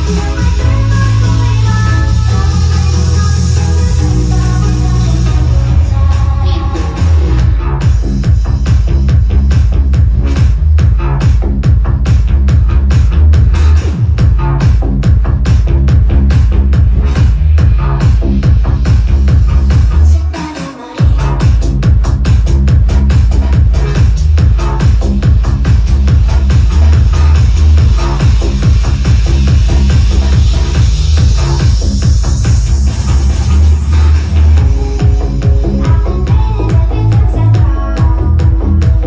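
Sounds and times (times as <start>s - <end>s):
electronic dance music: 0.0s - 39.0s.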